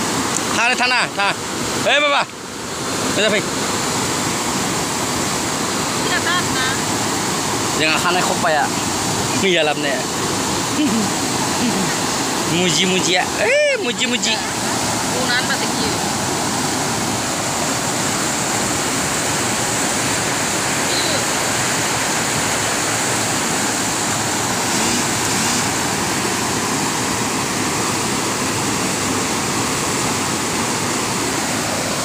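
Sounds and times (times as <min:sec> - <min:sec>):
river rushing over boulders: 0:00.0 - 0:32.0.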